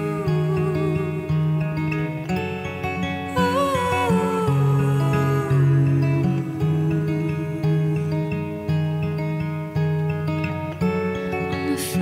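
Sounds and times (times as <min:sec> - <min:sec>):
woman singing long wordless note: 0:00.0 - 0:01.7, 0:03.3 - 0:08.8
fingerpicked acoustic guitar: 0:00.0 - 0:12.0.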